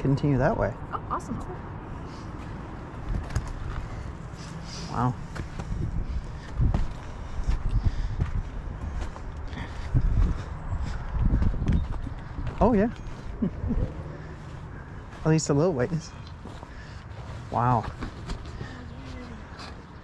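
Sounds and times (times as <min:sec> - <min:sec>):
footsteps on sandy rocky trail: 0:02.0 - 0:20.0.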